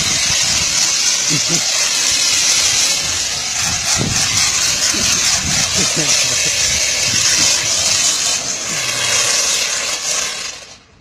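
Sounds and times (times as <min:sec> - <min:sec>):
spray machine hissing: 0:00.0 - 0:11.0.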